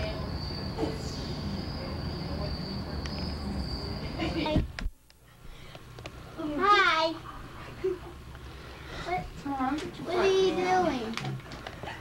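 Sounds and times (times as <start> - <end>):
crickets trilling: 0.0 - 4.6.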